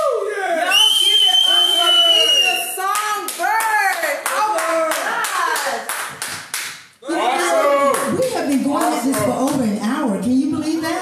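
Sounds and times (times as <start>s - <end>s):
hands clapping in an even beat: 2.9s - 7.0s, 7.9s - 9.7s.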